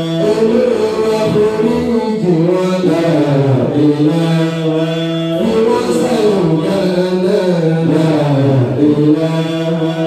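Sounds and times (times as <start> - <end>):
man chanting through a microphone: 0.0 - 10.0.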